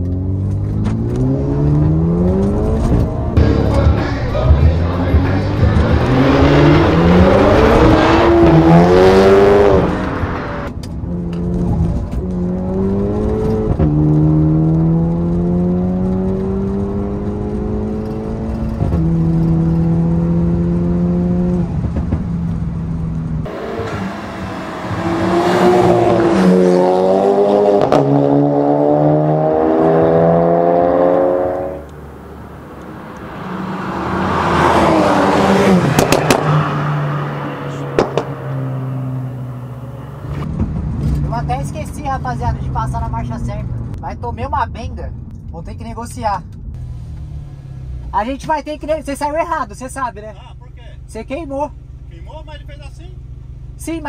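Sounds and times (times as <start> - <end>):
car engine accelerating through gears: 0.0 - 44.0, 46.5 - 50.0
car passing loudly: 1.2 - 10.7, 23.4 - 40.5.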